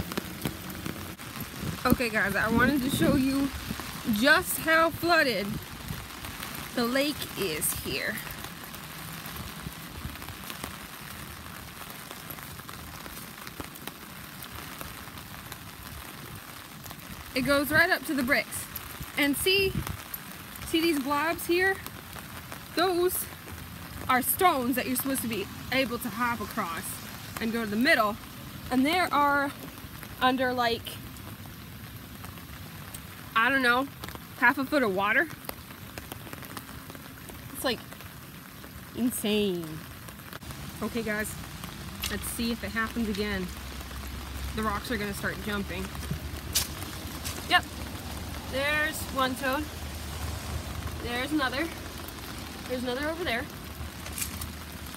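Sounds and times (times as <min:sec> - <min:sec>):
heavy rain on a pond: 0:00.0 - 0:54.9.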